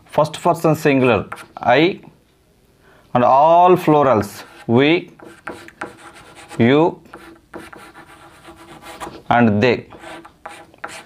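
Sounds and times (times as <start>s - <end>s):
man speaking: 0.1s - 2.1s, 3.1s - 5.1s, 6.6s - 7.0s, 9.3s - 10.0s
chalk scratching on chalkboard: 1.2s - 1.6s, 4.2s - 9.3s, 9.9s - 11.0s.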